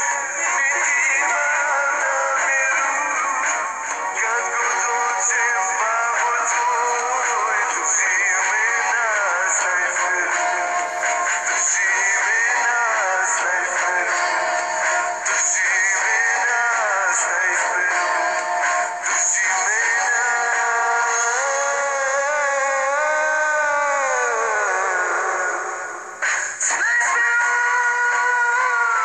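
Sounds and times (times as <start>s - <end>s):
backing music: 0.0s - 29.0s
man singing with vibrato: 0.0s - 29.0s.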